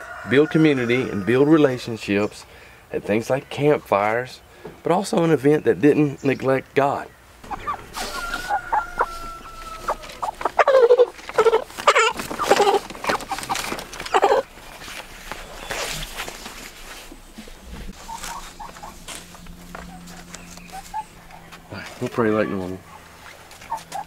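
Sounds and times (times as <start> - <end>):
chickens squawking: 7.4 - 24.0.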